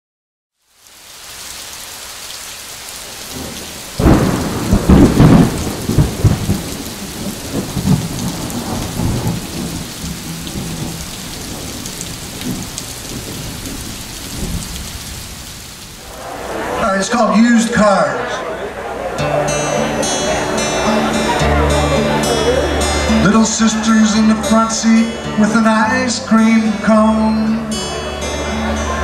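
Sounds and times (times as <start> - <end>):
rain falling: 0.6 - 29.0
thunder clap rumbling: 3.0 - 16.8.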